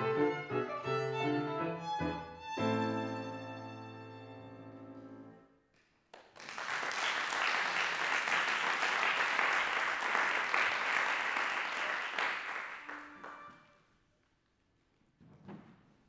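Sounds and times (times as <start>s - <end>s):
audience applauding: 6.1s - 13.7s.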